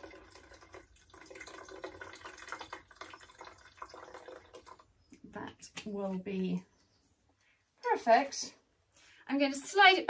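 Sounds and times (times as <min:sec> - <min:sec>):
liquid trickling and splashing: 0:00.0 - 0:05.1.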